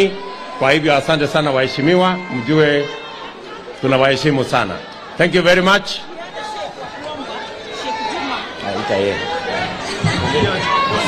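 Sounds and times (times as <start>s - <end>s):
murmur of many people talking: 0.0s - 11.0s.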